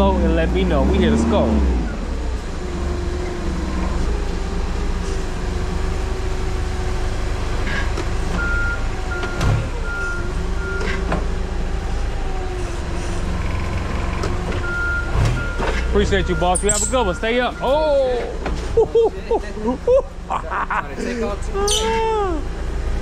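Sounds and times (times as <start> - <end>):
forklift warning beeps: 8.4 - 11.1, 14.6 - 18.4.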